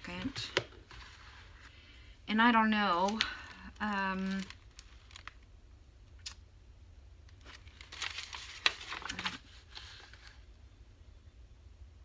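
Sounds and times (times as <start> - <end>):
paper rustling and crinkling: 0.0 - 1.8, 2.8 - 5.4, 7.4 - 10.5.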